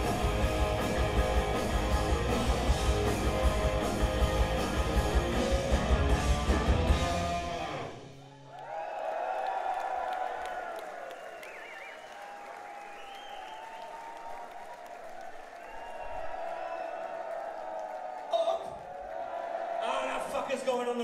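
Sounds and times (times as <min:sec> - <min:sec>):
audience applauding and cheering: 0:07.7 - 0:21.0.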